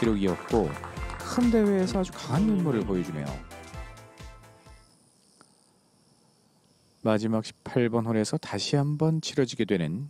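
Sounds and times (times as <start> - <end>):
high-pitched insect chirring: 0.0 - 3.8, 4.5 - 9.3
broadcast music: 0.0 - 4.9.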